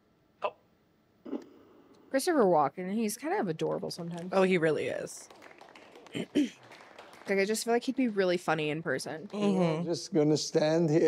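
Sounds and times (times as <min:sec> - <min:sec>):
breathy mouth sound: 0:01.2 - 0:02.1.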